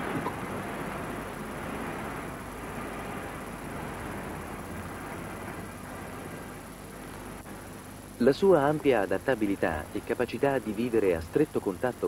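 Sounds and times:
street traffic hum: 0:00.0 - 0:06.3.

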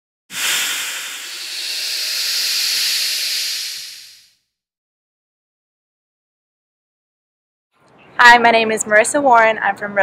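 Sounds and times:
loud rushing hiss: 0:00.3 - 0:04.3.

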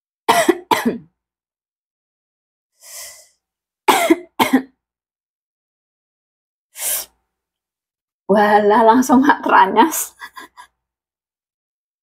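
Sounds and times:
woman coughing: 0:00.3 - 0:01.1, 0:03.9 - 0:04.8
breathy exhale: 0:02.8 - 0:03.4.

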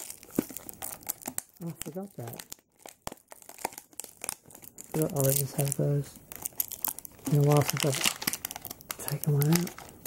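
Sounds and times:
plastic packaging crinkling: 0:00.0 - 0:10.0.

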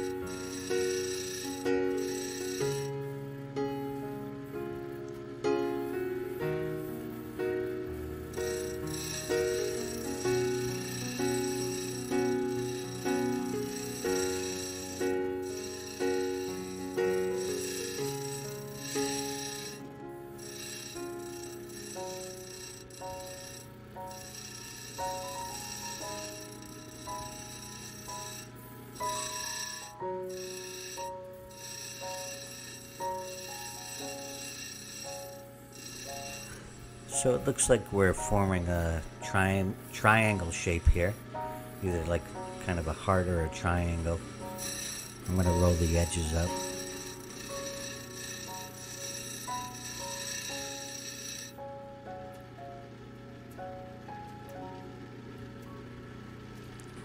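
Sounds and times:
slow melody of ringing notes: 0:00.0 - 0:56.3.

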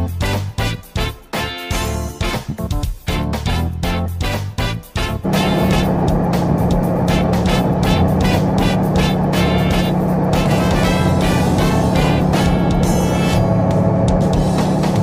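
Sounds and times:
rhythmic music: 0:00.0 - 0:15.0
propeller airplane engine drone: 0:03.4 - 0:15.0.

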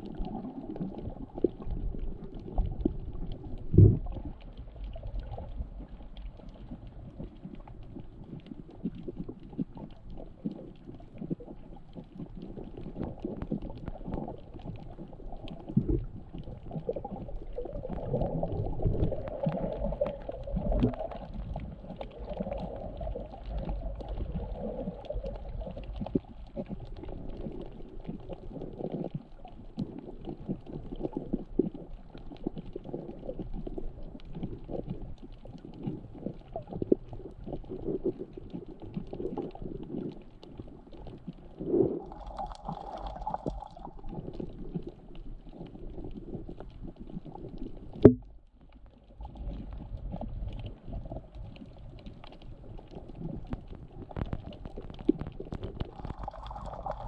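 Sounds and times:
small crackles and knocks: 0:00.0 - 0:57.0
underwater water noise: 0:00.0 - 0:57.0.

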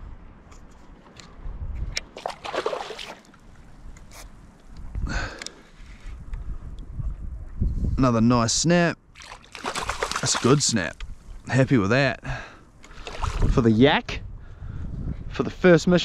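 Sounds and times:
wind rumble on microphone: 0:00.0 - 0:02.1, 0:03.5 - 0:05.4, 0:06.0 - 0:08.6, 0:12.9 - 0:16.0
water sloshing against kayak hull: 0:02.1 - 0:03.7, 0:09.2 - 0:10.8.

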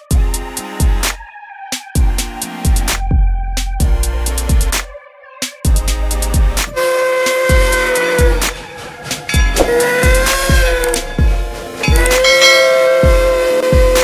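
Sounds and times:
steam locomotive whistle: 0:06.8 - 0:14.0
electronic beat music: 0:09.2 - 0:14.0.

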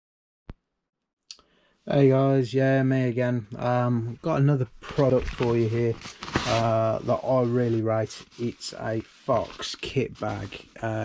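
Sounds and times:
man's voice: 0:01.9 - 0:11.0.

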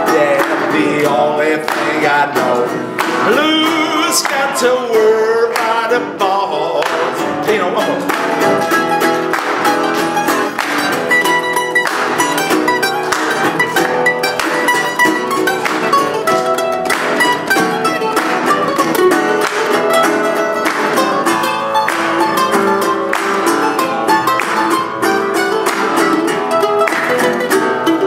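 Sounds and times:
mandolin picking lead lines: 0:00.0 - 0:28.0
resonator guitar: 0:00.0 - 0:28.0.

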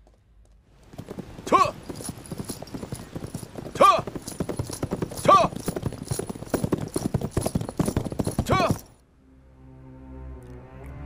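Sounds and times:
horse hooves clattering: 0:00.0 - 0:09.0
person shouting: 0:08.4 - 0:08.8.

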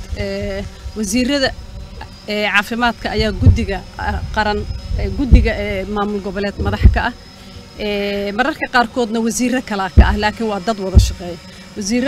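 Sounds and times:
woman speaking into microphones: 0:00.0 - 0:07.2, 0:07.8 - 0:12.0
faint high-pitched whine: 0:00.0 - 0:12.0.

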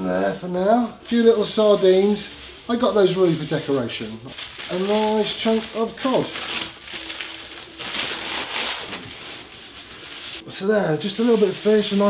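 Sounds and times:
paper and plastic wrapping rustling: 0:01.0 - 0:12.0.

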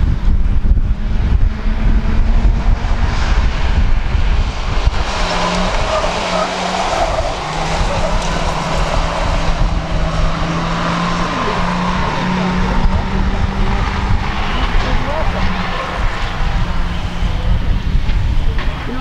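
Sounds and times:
race car engines running hard: 0:00.0 - 0:19.0
wind rumbling on microphone: 0:00.0 - 0:19.0.

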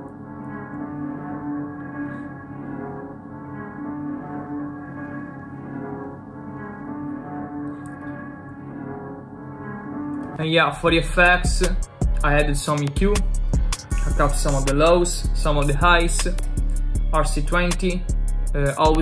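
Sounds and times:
dark ambient droning music: 0:00.0 - 0:19.0.

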